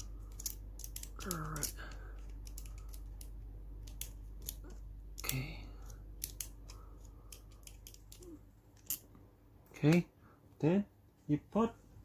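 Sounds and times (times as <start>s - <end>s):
wrench clicking and scraping: 0.0s - 8.2s.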